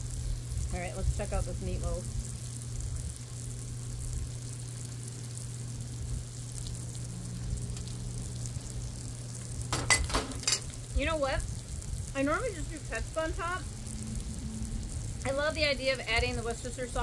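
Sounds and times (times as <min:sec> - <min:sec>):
potatoes sizzling on a griddle: 0:00.0 - 0:17.0
steady low hum: 0:00.0 - 0:17.0.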